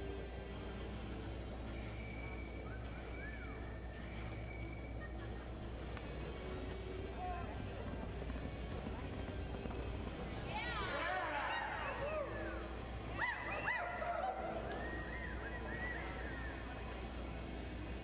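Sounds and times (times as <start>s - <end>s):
constant low hum: 0.0s - 18.0s
murmur of crowd voices: 1.8s - 18.0s.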